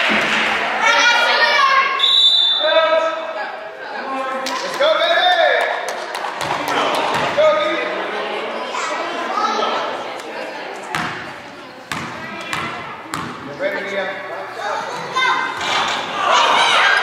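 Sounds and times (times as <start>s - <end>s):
basketball bouncing on hardwood floor: 11.9s - 13.4s.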